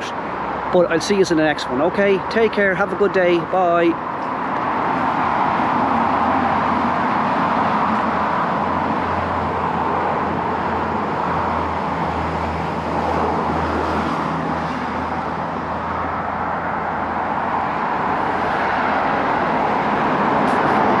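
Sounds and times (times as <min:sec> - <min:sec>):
cars driving past: 0:00.0 - 0:21.0.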